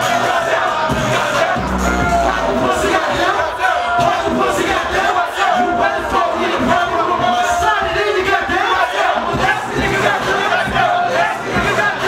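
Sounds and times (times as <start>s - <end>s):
rapper shouting into microphone: 0.0s - 4.7s
crowd yelling along: 0.0s - 12.0s.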